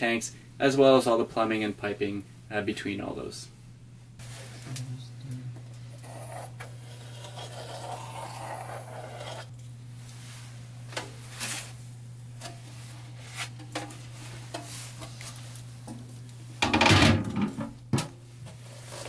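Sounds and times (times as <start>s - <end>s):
steady low hum: 0.0s - 19.0s
metal sink scraping on countertop: 6.0s - 9.5s.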